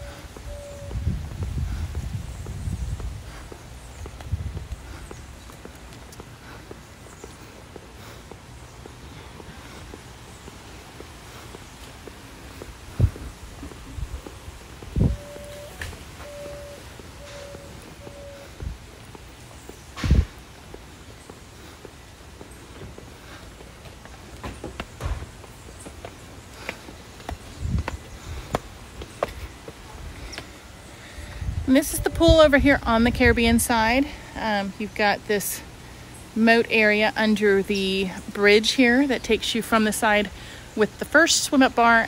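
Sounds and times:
footsteps on pavement: 0.0s - 42.0s
faint steady high note: 15.0s - 18.4s.

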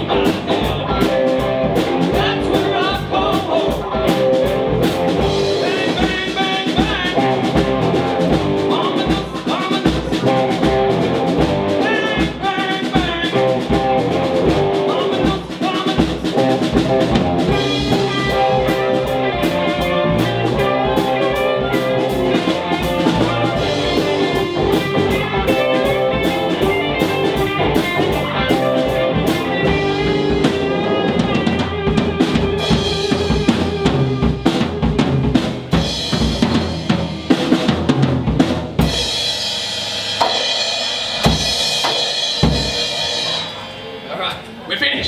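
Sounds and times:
blues-rock band playing: 0.0s - 45.0s
loud drum hits and fills: 0.0s - 45.0s.

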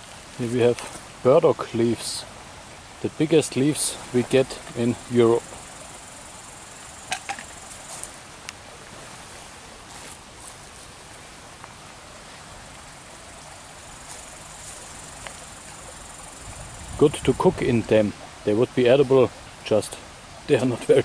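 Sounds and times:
insects chirring in grass: 0.7s - 8.4s, 9.1s - 18.0s.

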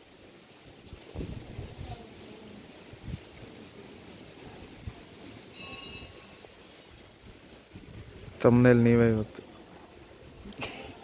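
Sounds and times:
faint outdoor ambient noise: 0.0s - 11.0s
high ringing tone: 5.5s - 6.5s.

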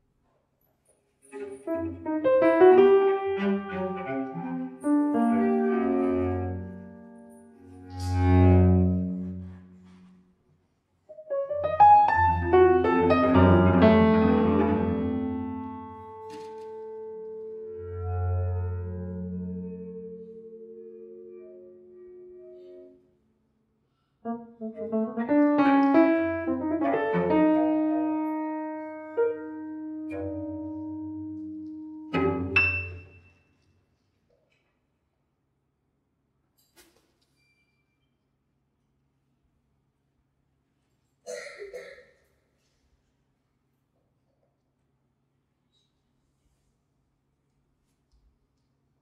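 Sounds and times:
grand piano improvisation: 1.3s - 10.2s, 11.1s - 23.2s, 24.2s - 33.3s
low bowed cello note: 2.1s - 10.0s, 17.1s - 23.1s.

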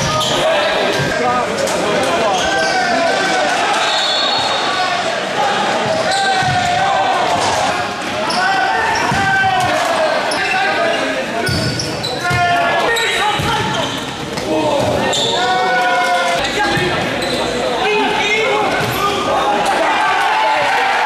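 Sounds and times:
people shouting in a hall: 0.0s - 21.0s.

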